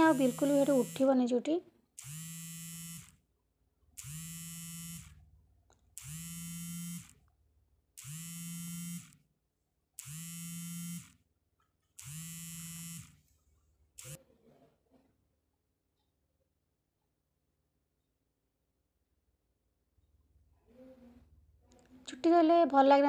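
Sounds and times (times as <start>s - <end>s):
vibration motor buzzing: 0.0s - 1.2s, 2.0s - 3.2s, 4.0s - 5.2s, 6.0s - 7.2s, 8.0s - 9.2s, 10.0s - 11.2s, 12.0s - 13.3s, 14.0s - 14.2s.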